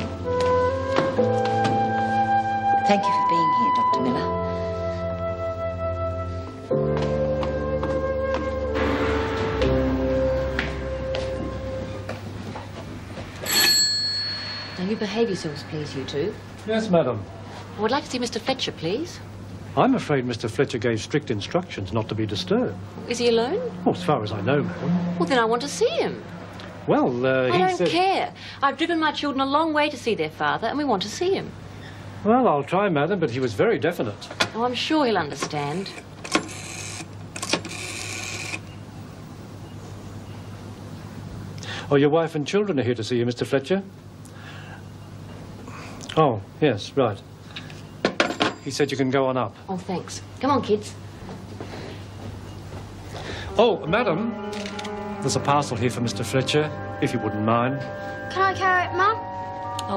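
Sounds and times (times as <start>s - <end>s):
service bell ringing: 13.4s - 16.7s
rotary phone dial whirring: 35.7s - 38.7s.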